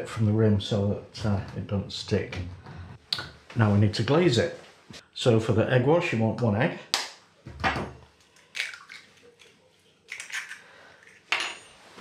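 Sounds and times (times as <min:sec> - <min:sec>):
eggshell crackling: 0:08.2 - 0:10.8.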